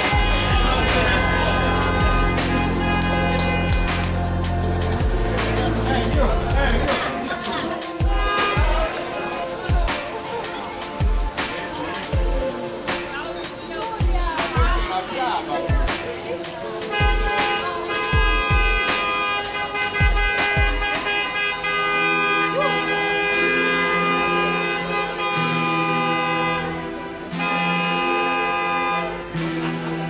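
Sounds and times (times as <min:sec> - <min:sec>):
car horns honking: 0:00.0 - 0:09.6, 0:16.6 - 0:30.0
music with thumping beat: 0:00.0 - 0:14.9, 0:15.7 - 0:19.2, 0:19.8 - 0:21.1.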